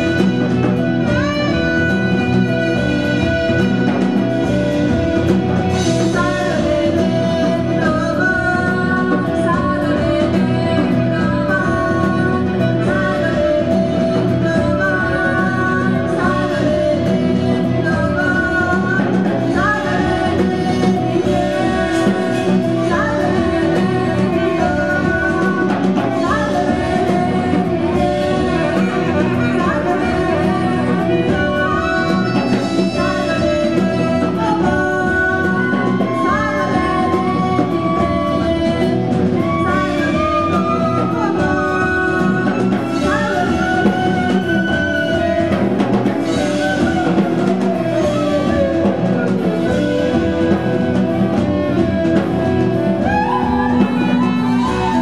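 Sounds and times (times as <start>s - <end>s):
bass guitar: 0.0s - 55.0s
drum kit beat: 0.0s - 55.0s
electric guitar: 0.0s - 55.0s
saxophone: 0.0s - 55.0s.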